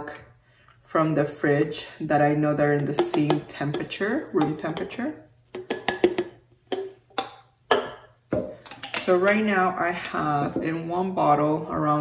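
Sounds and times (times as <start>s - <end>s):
plastic bottles knocking and clicking: 2.8s - 9.3s.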